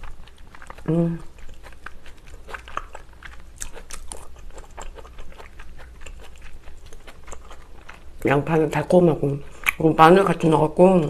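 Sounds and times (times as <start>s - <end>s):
chewing food: 0.0s - 9.9s
wet mouth clicks and smacks: 9.6s - 9.8s.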